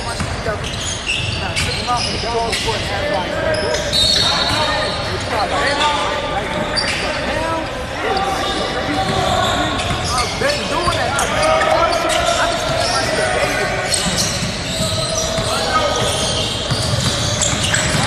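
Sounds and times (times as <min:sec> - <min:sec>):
chatter and calls of people: 0:00.0 - 0:18.0.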